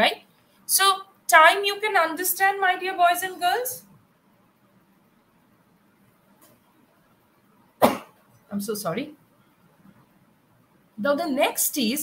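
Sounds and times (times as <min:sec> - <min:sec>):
woman coughing: 0:07.8 - 0:08.2.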